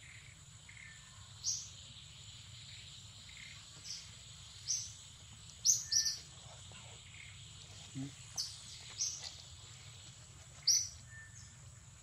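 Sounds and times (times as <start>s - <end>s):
thin high insect whine: 0.0s - 12.0s
high bird chirps: 5.6s - 6.3s, 10.6s - 11.6s.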